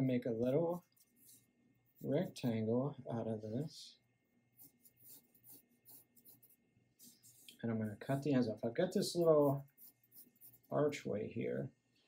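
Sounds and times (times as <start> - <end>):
pencil scratching on paper: 0.7 - 2.5, 4.6 - 8.3, 9.0 - 10.9.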